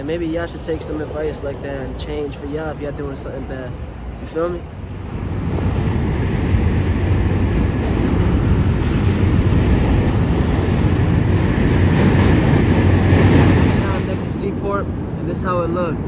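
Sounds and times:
rumble of passing vehicles: 0:00.0 - 0:16.0.

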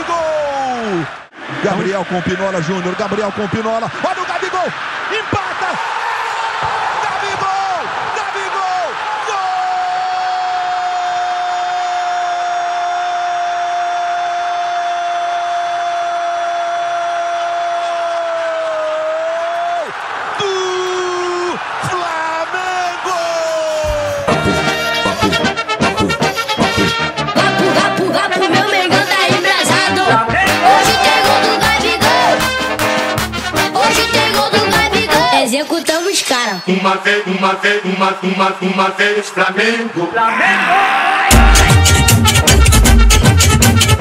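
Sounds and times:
stadium crowd noise: 0:00.0 - 0:44.0
commentator shouting: 0:20.4 - 0:27.1, 0:28.5 - 0:32.8, 0:39.6 - 0:42.0.

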